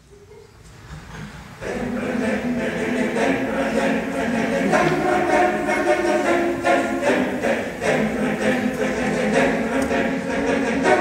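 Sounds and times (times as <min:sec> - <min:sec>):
choir singing a cappella: 0:01.6 - 0:11.0.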